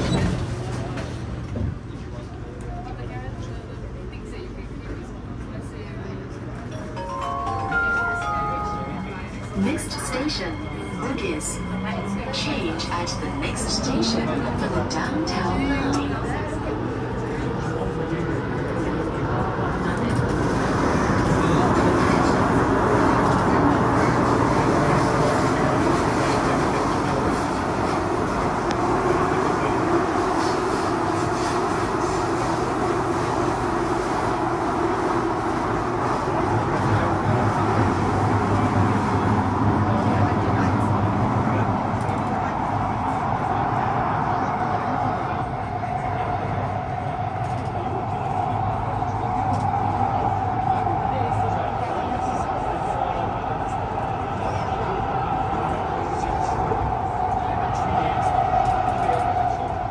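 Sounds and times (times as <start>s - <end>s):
metro wheels and motors rumbling: 0.0s - 59.9s.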